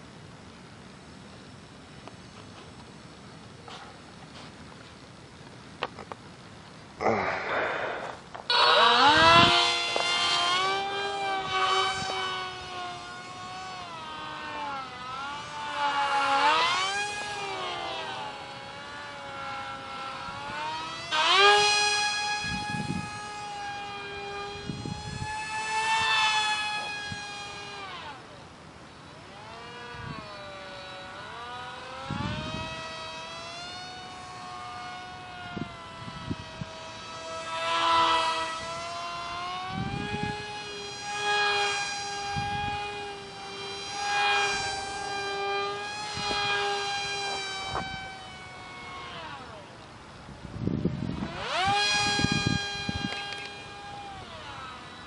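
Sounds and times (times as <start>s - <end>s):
model plane motor whine: 7.0s - 55.0s.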